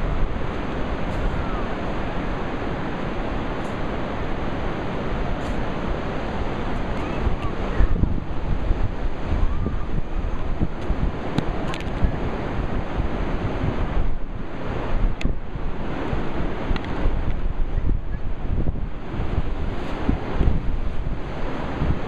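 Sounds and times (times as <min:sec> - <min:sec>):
ocean surf: 0:00.0 - 0:22.0
wind buffeting microphone: 0:00.0 - 0:22.0.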